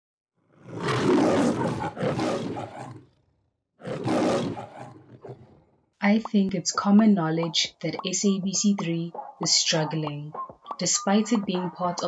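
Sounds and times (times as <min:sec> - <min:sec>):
long roars: 0:00.4 - 0:05.8.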